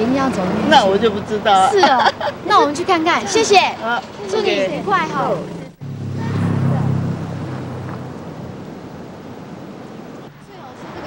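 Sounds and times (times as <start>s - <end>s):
motor scooter engine passing: 0.0s - 10.3s.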